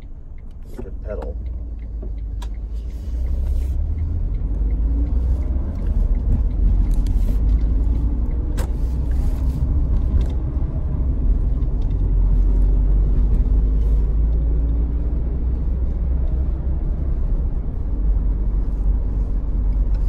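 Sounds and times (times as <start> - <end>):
road rumble: 0.0 - 20.0.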